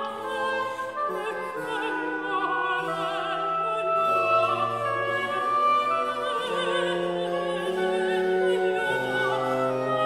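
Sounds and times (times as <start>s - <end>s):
small ensemble playing held notes: 0.0s - 10.0s
soprano singing: 0.0s - 10.0s.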